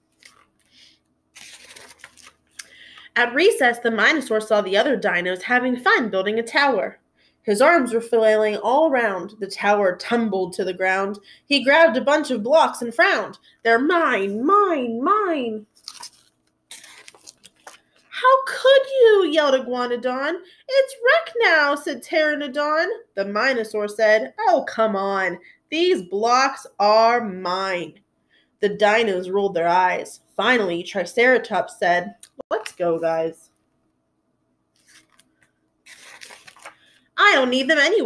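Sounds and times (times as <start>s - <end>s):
book page rustling: 0.0s - 0.7s, 1.3s - 2.6s, 15.7s - 18.0s, 34.7s - 37.0s.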